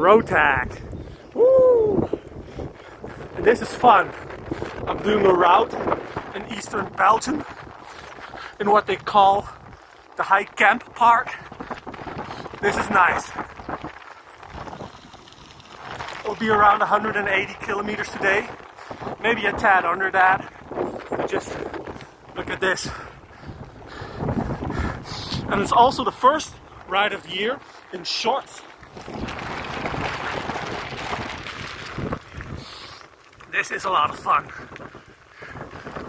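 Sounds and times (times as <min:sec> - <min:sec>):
bike tyres rolling on gravel: 0:00.0 - 0:36.0
grit ticking under tyres: 0:02.0 - 0:36.0.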